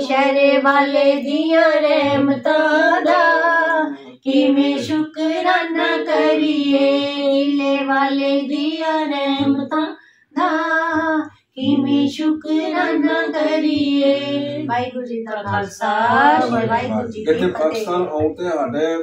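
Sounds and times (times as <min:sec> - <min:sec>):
women singing a hymn: 0:00.0 - 0:17.9
singers breathing: 0:10.0 - 0:10.3.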